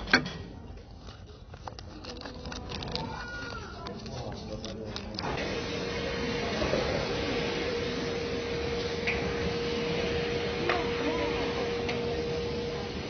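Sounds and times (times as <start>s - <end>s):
faint voices: 0.5s - 5.4s, 6.0s - 13.0s.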